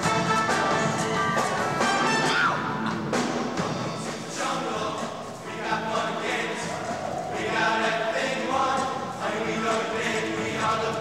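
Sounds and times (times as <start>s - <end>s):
choir singing sustained chords: 3.6s - 11.0s.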